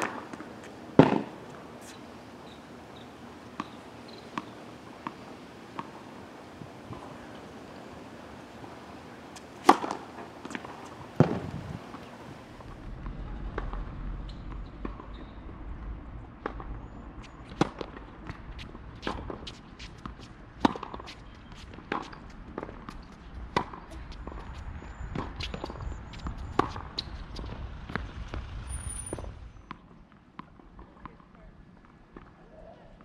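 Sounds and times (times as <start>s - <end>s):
racket striking tennis ball: 0.0s - 2.0s, 3.5s - 6.1s, 9.0s - 12.1s, 16.4s - 24.4s
tennis ball bouncing: 0.0s - 6.2s, 6.8s - 12.8s, 16.4s - 24.4s, 25.1s - 28.1s
low rumble: 12.4s - 19.4s, 23.4s - 29.7s.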